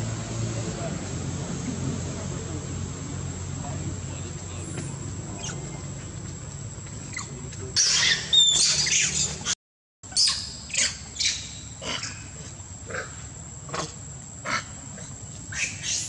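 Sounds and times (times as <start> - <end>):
high insect whine: 0.0 - 9.5, 10.1 - 16.0
monkeys screaming: 5.3 - 6.0, 7.0 - 13.2, 15.5 - 16.0.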